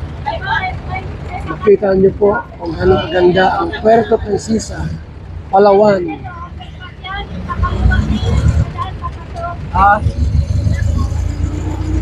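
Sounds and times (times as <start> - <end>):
vehicle driving past: 9.6 - 12.0.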